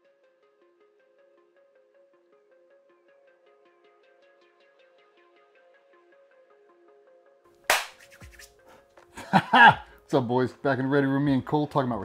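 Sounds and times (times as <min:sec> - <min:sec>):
sharp hand clap: 0:07.7 - 0:08.5.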